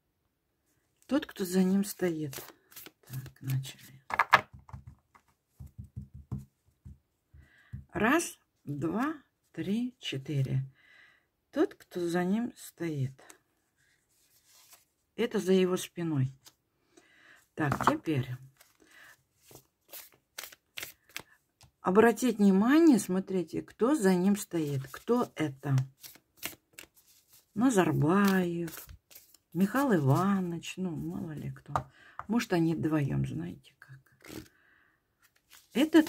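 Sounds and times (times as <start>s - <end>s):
cards being shuffled: 1.8s - 6.5s, 14.1s - 14.9s, 17.7s - 21.7s, 24.7s - 31.8s, 34.2s - 34.5s, 35.2s - 36.0s.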